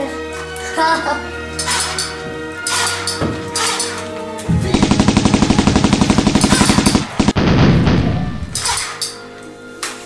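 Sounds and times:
machine-gun fire: 4.5s - 8.8s.

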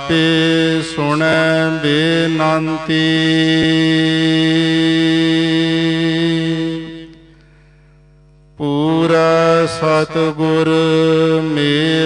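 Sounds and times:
person chanting a hymn: 0.0s - 7.4s, 8.6s - 12.0s
faint hum: 0.0s - 12.0s.

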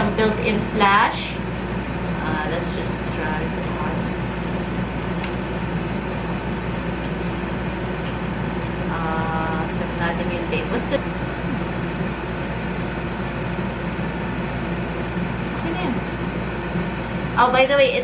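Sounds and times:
low mechanical hum: 0.0s - 18.0s.

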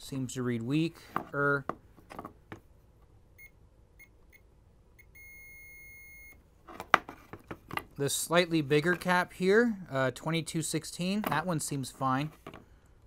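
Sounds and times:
meter beeping chirps and tone: 3.4s - 6.4s.

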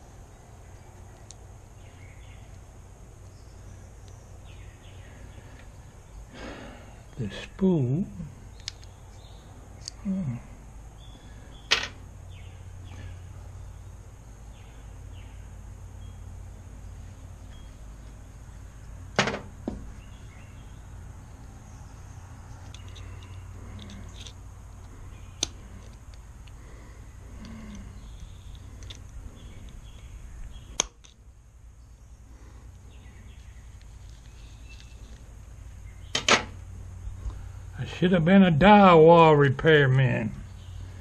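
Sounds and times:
low background hum: 0.0s - 41.0s.

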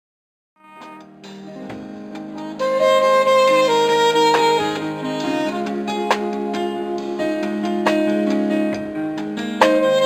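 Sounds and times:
saxophone slow melody: 0.6s - 1.3s, 2.3s - 10.0s
keyboard chords: 0.6s - 10.0s.

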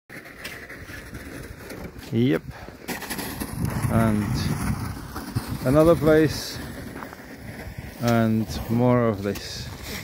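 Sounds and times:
wind buffeting microphone: 0.8s - 10.0s.

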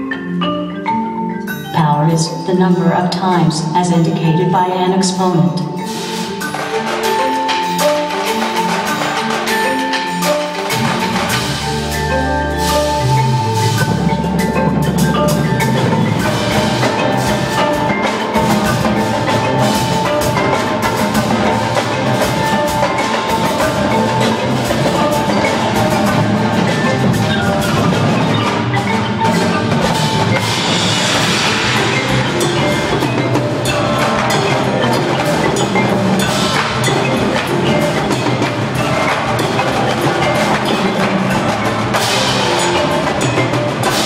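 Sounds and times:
marching drums rapid strokes: 0.0s - 44.0s
marimba sustained notes: 0.0s - 44.0s.

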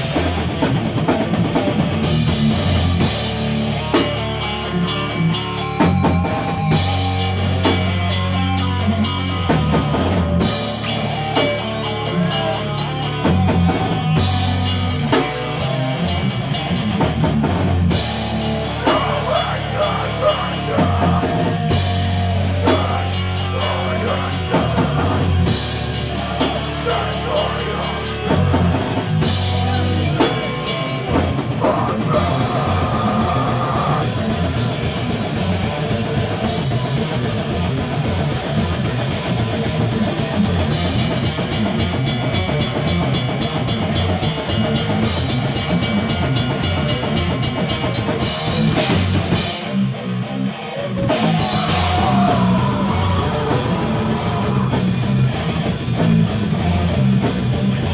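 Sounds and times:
drum kit and cymbals: 0.0s - 50.2s, 51.0s - 57.9s
bass guitar: 0.0s - 57.9s
distorted guitars: 0.0s - 57.9s.

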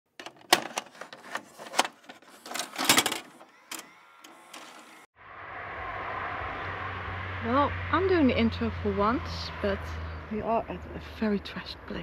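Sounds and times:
low hum: 5.2s - 10.4s.

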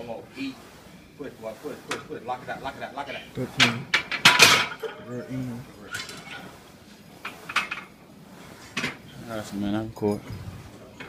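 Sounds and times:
barbell weight plates clanking: 3.0s - 5.1s.

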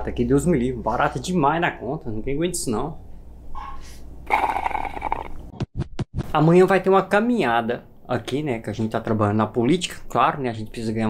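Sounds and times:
man sipping from mug: 4.3s - 5.4s
noisy slurp: 4.3s - 5.4s.

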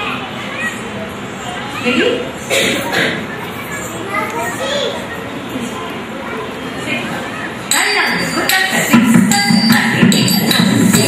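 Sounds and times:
children chattering and calling out: 0.0s - 9.0s.

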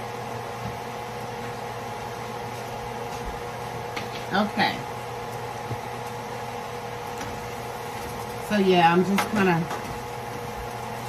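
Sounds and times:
electrical hum with hiss: 0.0s - 11.0s.

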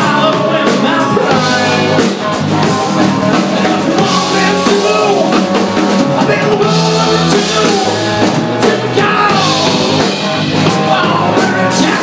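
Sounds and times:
bass guitar: 0.0s - 12.0s
distorted electric guitar: 0.0s - 12.0s
drum kit: 0.0s - 12.0s
man singing: 0.0s - 12.0s.

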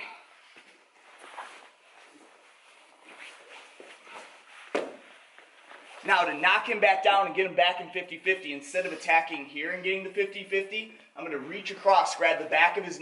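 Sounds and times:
bodies shifting on mat: 0.4s - 6.1s
fabric rustling: 0.4s - 6.3s.

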